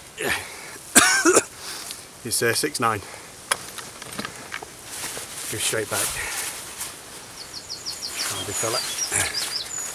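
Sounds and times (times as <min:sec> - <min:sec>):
steady outdoor hiss: 0:00.0 - 0:09.9.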